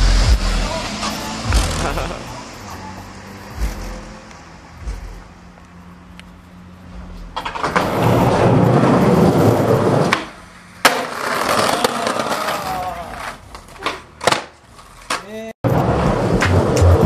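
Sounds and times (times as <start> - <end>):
skateboard wheels rolling: 0.4 - 17.0
skateboard smacking the ground: 9.9 - 15.3.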